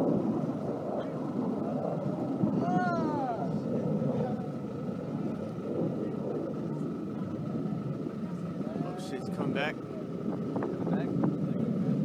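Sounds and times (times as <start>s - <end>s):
steady noise: 0.0s - 12.0s.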